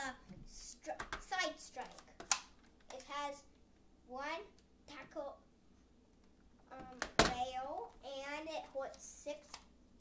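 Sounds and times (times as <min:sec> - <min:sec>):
child speaking: 0:00.0 - 0:02.2, 0:02.9 - 0:03.5, 0:04.1 - 0:05.5, 0:06.7 - 0:09.6.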